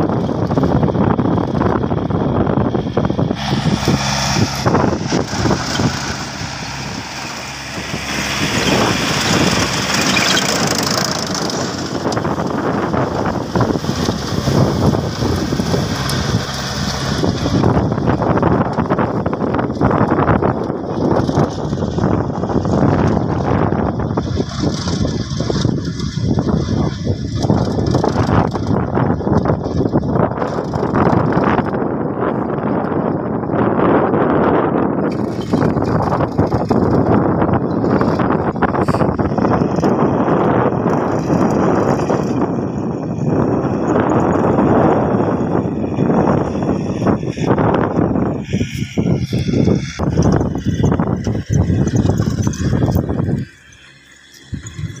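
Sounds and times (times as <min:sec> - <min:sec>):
tractor engine under load: 0:00.0 - 0:55.0.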